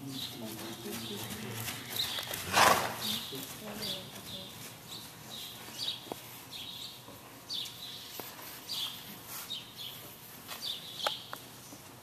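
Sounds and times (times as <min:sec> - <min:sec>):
horse snorting: 0:01.2 - 0:03.3.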